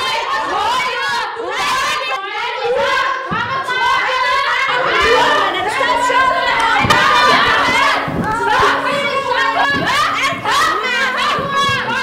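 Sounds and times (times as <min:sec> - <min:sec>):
young voices shouting: 0:02.7 - 0:12.0.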